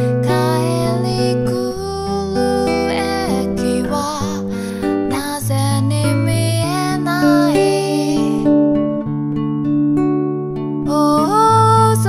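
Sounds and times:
woman singing: 0:00.0 - 0:08.9, 0:10.8 - 0:12.0
nylon-string guitar chords: 0:00.0 - 0:12.0.

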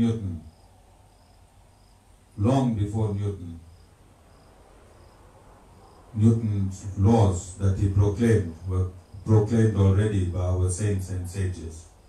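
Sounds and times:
insect chirping: 0:00.0 - 0:12.0
room hiss: 0:00.0 - 0:12.0.

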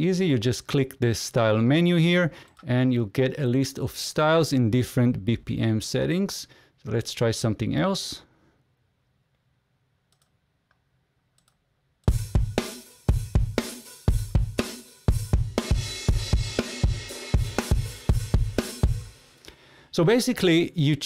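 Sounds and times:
faint mouse clicks: 0:10.1 - 0:11.6
rock drum kit groove: 0:12.1 - 0:19.5.

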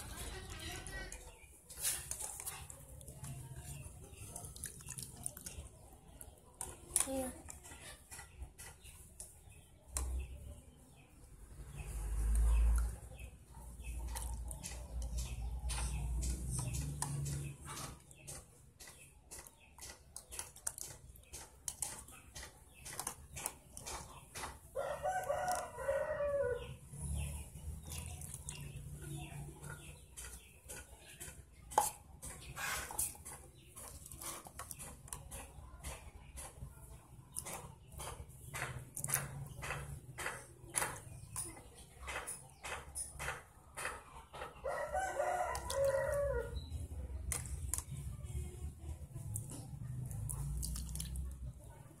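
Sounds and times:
rooster crowing: 0:44.6 - 0:46.6.

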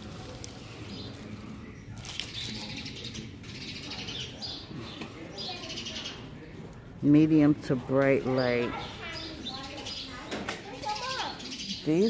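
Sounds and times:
small birds chirping: 0:00.0 - 0:07.4, 0:08.0 - 0:12.0.

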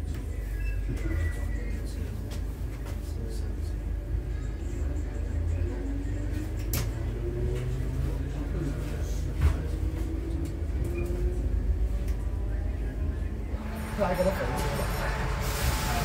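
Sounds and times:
train wheels rumbling on rails: 0:13.5 - 0:16.0.

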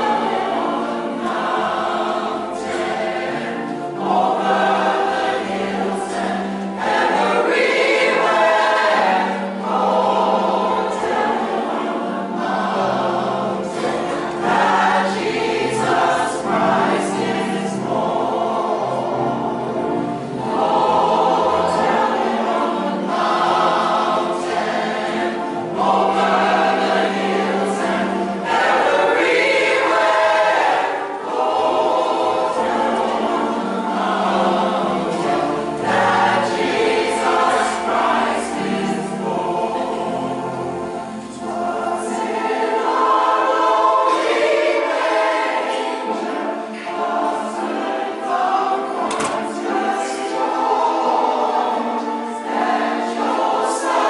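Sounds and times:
gospel choir singing: 0:00.0 - 0:54.0.

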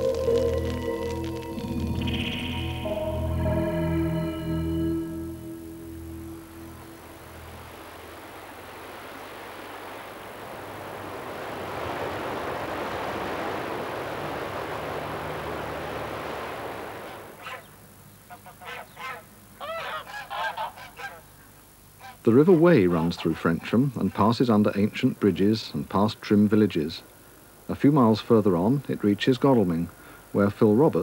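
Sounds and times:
water rushing over a weir: 0:07.1 - 0:17.4
waterfowl honking: 0:17.0 - 0:17.7, 0:18.3 - 0:21.4, 0:22.0 - 0:24.4.

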